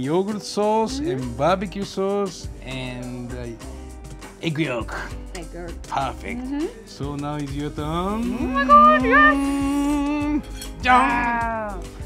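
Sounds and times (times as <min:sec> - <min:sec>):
person exclaiming drawn-out yes: 0:08.1 - 0:11.9.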